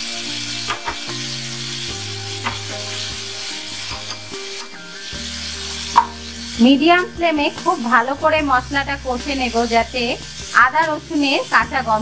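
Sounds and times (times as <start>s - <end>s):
oil sizzling in a frying pan: 0.0s - 12.0s.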